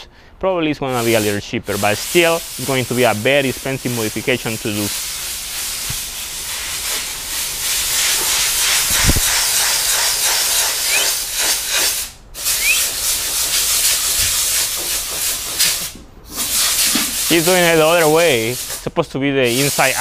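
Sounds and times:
steady loud hiss: 0:00.0 - 0:20.0.

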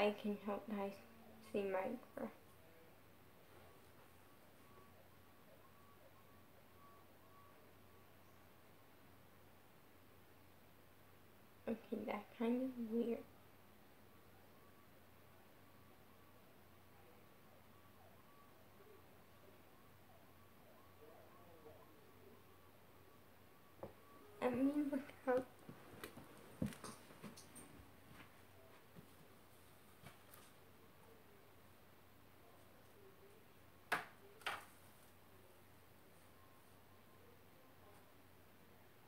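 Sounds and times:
low steady hum: 0:00.0 - 0:39.0
distant siren wailing: 0:00.2 - 0:11.5, 0:12.7 - 0:26.8.

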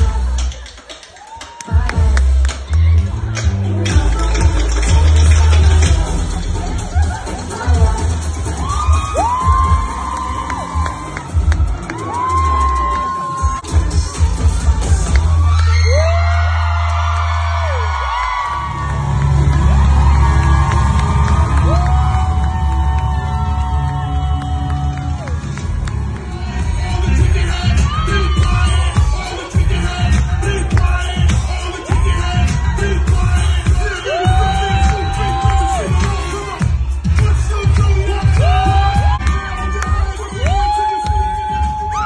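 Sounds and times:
loud dance music: 0:00.0 - 0:42.0
audience cheering: 0:00.6 - 0:03.2, 0:06.4 - 0:42.0
long whoops: 0:08.6 - 0:11.3, 0:11.9 - 0:13.6, 0:15.4 - 0:25.4, 0:38.4 - 0:42.0.

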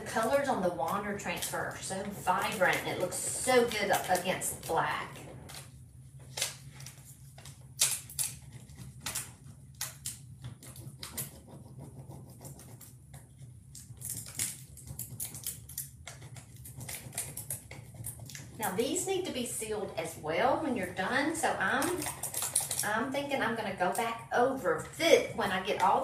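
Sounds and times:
low steady hum: 0:00.0 - 0:26.0
stick scratching over plastic: 0:01.3 - 0:19.3.

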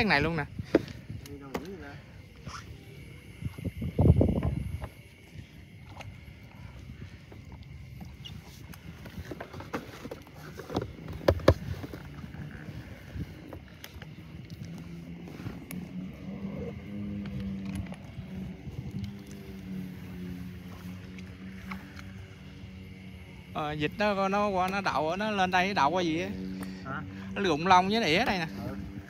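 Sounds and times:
low steady hum: 0:00.0 - 0:29.0
boat rustling through reeds: 0:01.9 - 0:29.0.

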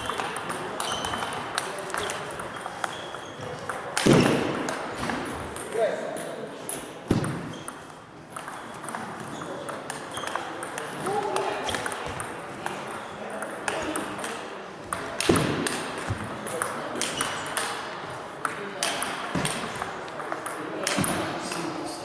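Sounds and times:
table tennis ball clicking: 0:06.7 - 0:17.8.

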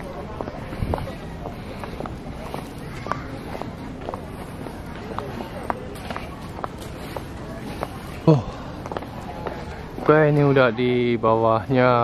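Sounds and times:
faint voices: 0:00.0 - 0:12.0
wind buffeting microphone: 0:00.3 - 0:02.5.

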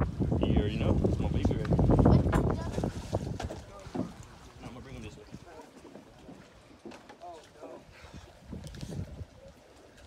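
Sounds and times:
wind rumble on microphone: 0:00.0 - 0:05.5, 0:08.0 - 0:09.7.

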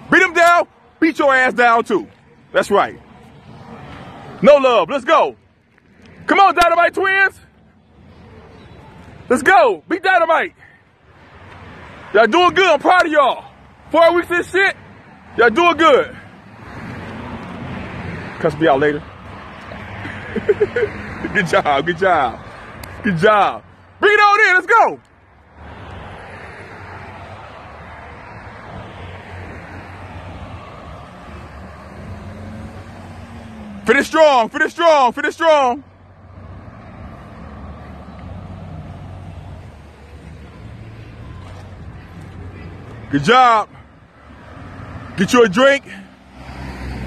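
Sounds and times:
car passing on road: 0:00.0 - 0:47.0.

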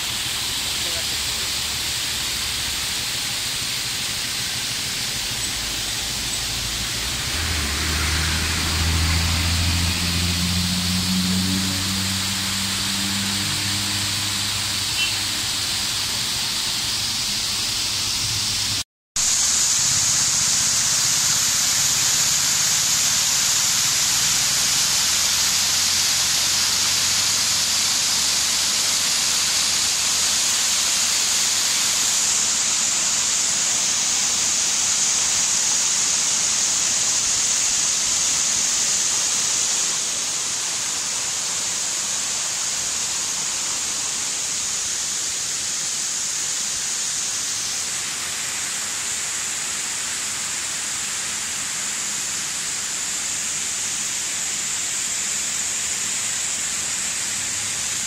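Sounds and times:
rushing hiss: 0:00.0 - 0:58.0
waterfall pouring into pool: 0:00.0 - 0:58.0
low engine hum: 0:03.4 - 0:18.8.

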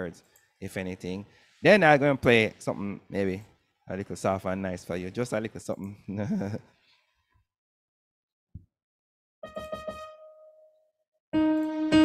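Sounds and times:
electronic keyboard notes: 0:09.4 - 0:10.8, 0:11.4 - 0:12.0.

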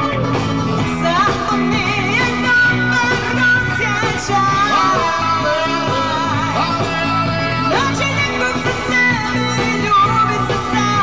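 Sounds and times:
band with steady beat: 0:00.0 - 0:11.0.

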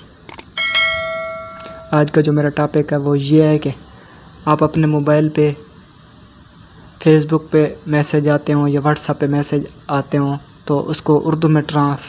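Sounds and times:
bell ding ringing: 0:00.6 - 0:02.3.

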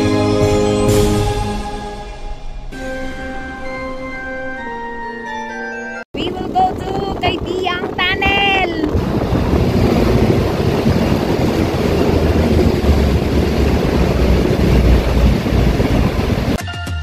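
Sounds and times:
person speaking: 0:06.2 - 0:09.0
deep rumble: 0:06.2 - 0:16.6
wind buffeting microphone: 0:06.2 - 0:16.6.

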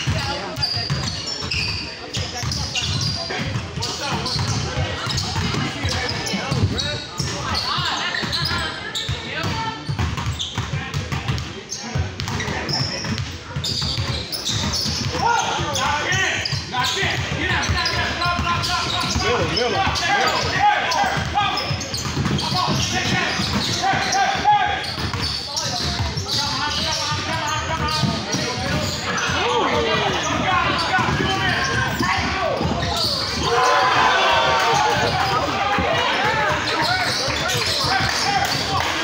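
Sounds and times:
basketball bouncing on hard court: 0:00.0 - 0:07.4, 0:09.4 - 0:15.7, 0:21.1 - 0:24.1, 0:24.8 - 0:33.5
players and spectators shouting: 0:15.1 - 0:24.9, 0:26.6 - 0:39.0.

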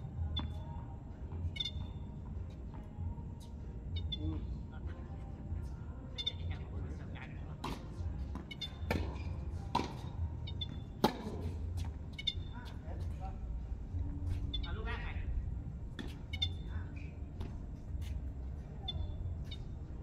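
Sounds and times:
tennis ball struck by racket: 0:07.6 - 0:10.1, 0:11.0 - 0:11.6
steady low rumble: 0:09.6 - 0:20.0.

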